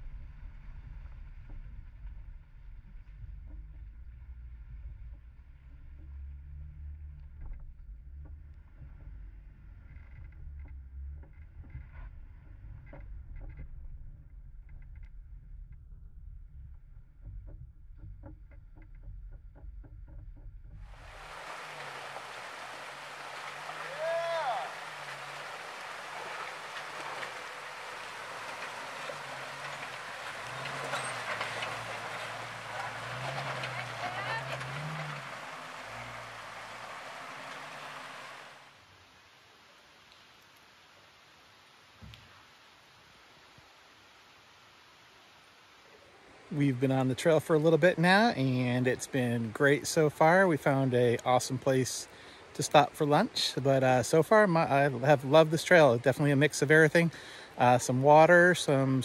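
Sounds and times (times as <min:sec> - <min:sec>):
car engine droning: 0:00.0 - 0:38.8
knocks and rattles: 0:16.6 - 0:24.0, 0:24.7 - 0:38.5
stream water rushing over rocks: 0:20.8 - 0:38.9, 0:45.6 - 0:59.0.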